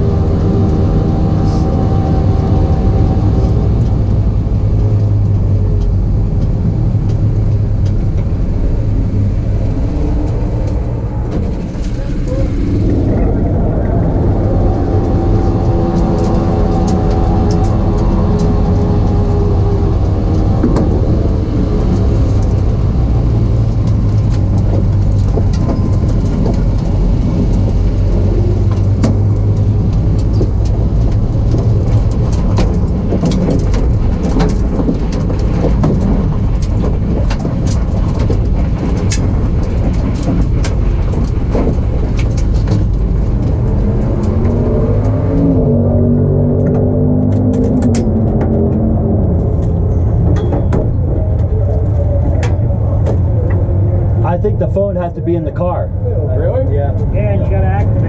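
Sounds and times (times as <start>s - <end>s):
race car engine running: 0.0s - 58.0s.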